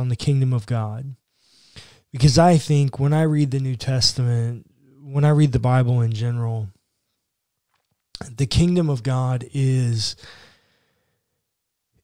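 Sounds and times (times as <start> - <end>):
man speaking: 0.0 - 1.2, 2.2 - 6.8, 8.2 - 10.3
man's breathy exhale: 10.2 - 11.2.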